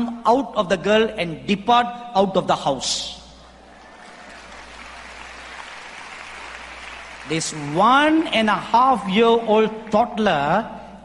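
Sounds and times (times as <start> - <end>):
audience applauding: 3.6 - 8.6.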